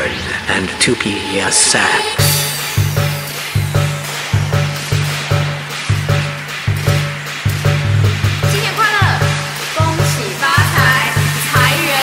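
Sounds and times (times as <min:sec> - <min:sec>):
dance music with pulsing bass: 0:02.2 - 0:12.0.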